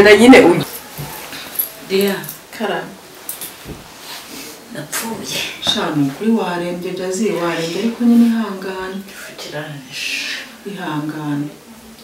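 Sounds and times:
woman talking: 0.0 - 0.7, 1.8 - 3.0, 4.7 - 11.6.

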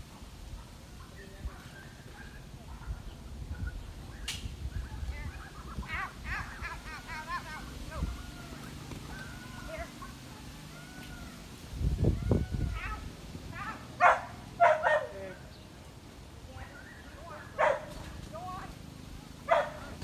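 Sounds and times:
dog barking: 1.6 - 3.2, 14.0 - 15.4, 17.3 - 18.2, 19.3 - 20.0.

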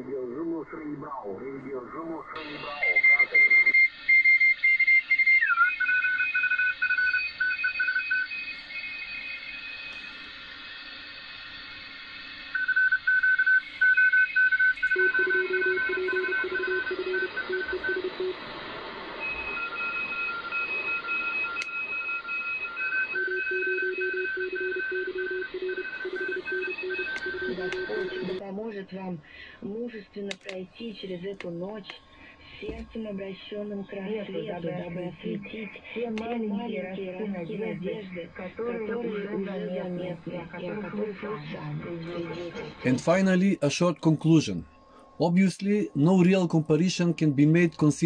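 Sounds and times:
radio band hiss: 0.0 - 4.1, 15.7 - 21.9, 25.8 - 48.0
morse code tones: 12.6 - 18.4, 19.2 - 28.4.

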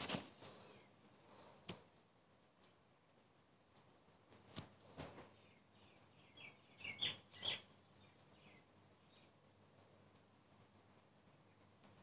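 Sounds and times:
faint bird chirping: 0.3 - 2.9, 3.6 - 10.2, 11.2 - 12.0.

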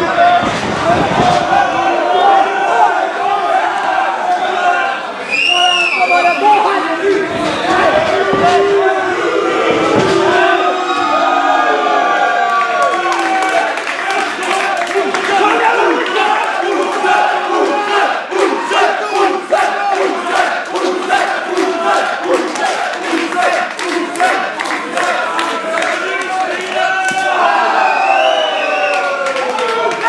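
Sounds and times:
crowd chanting: 0.0 - 30.0
crowd shouting and cheering: 0.0 - 30.0
rhythmic clapping: 12.6 - 27.6.

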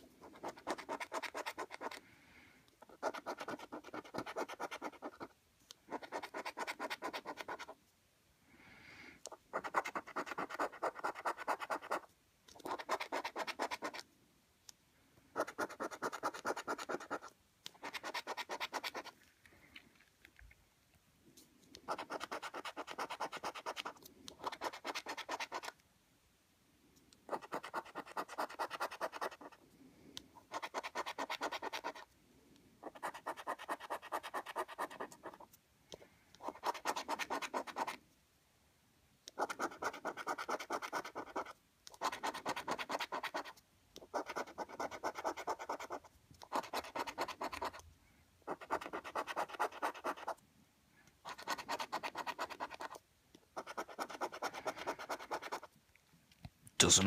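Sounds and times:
coin scratching a scratchcard: 0.2 - 2.0, 2.8 - 5.3, 5.9 - 7.8, 9.5 - 14.0, 15.4 - 19.2, 21.9 - 25.7, 27.3 - 29.6, 30.5 - 32.1, 32.8 - 35.5, 36.4 - 38.0, 39.4 - 47.8, 48.5 - 50.4, 51.2 - 53.0, 53.6 - 55.7.

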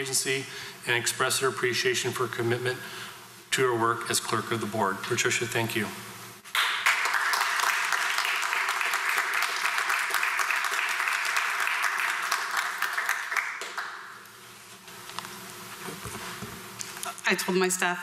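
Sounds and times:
audience clapping: 6.5 - 14.2.

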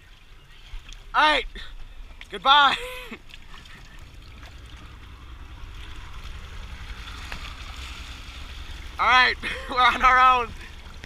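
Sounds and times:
water churning and trickling: 0.0 - 11.0
low rumble: 1.6 - 11.0.

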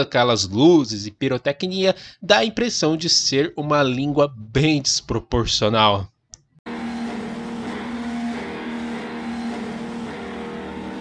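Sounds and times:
distorted electric guitar note: 6.7 - 11.0.

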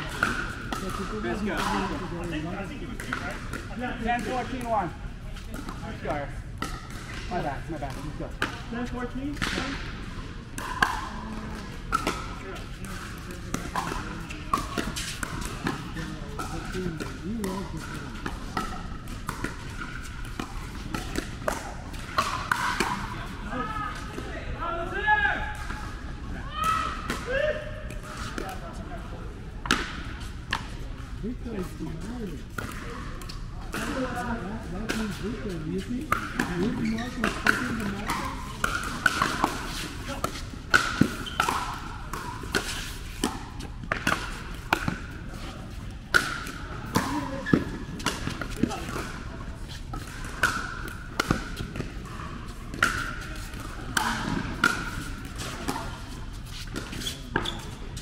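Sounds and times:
voices murmuring: 0.0 - 58.0
ball bouncing on court: 10.6 - 23.1, 34.8 - 45.4, 46.1 - 52.1
paddles hitting plastic ball: 10.6 - 23.1, 34.8 - 45.4, 46.1 - 49.2, 49.9 - 52.1.

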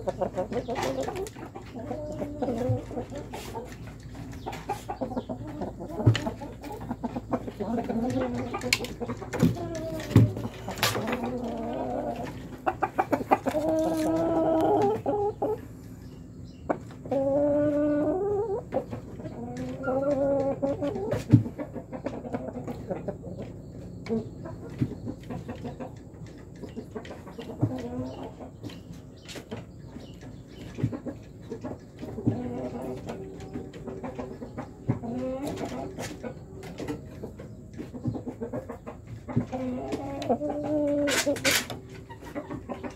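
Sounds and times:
chickens clucking: 0.0 - 42.9.

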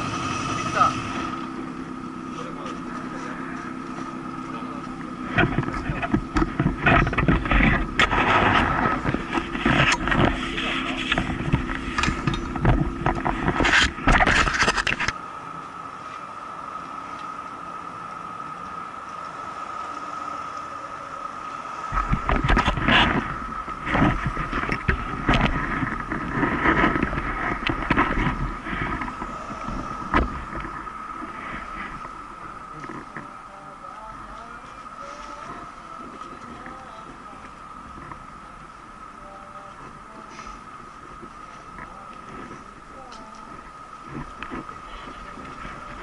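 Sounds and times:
faint steady whine: 0.0 - 46.0
uneven rumble and rustle: 0.0 - 46.0
knocks and rustles on microphone: 5.3 - 15.2, 22.0 - 32.2.

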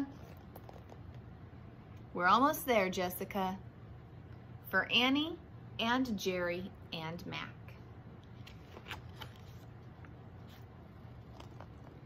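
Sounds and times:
paper pages rustling: 8.4 - 12.0.

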